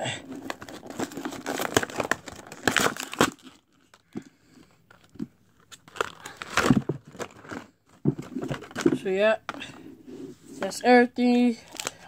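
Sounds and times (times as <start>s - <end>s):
plastic packaging tearing and crinkling: 0.2s - 4.0s, 4.9s - 8.9s, 11.6s - 12.0s.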